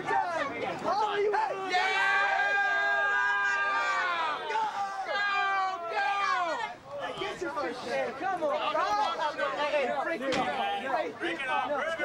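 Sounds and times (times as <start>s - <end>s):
people screaming: 1.4s - 6.7s.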